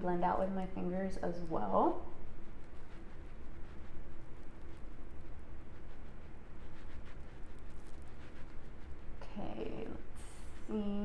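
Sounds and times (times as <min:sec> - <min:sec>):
steady low hum: 0:00.0 - 0:11.0
makeup brush strokes on skin: 0:00.4 - 0:11.0.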